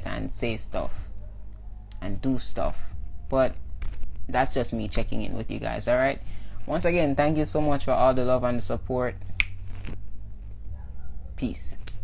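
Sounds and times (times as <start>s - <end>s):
low steady hum: 0.0s - 12.0s
finger snap: 9.4s - 9.6s, 11.8s - 12.0s.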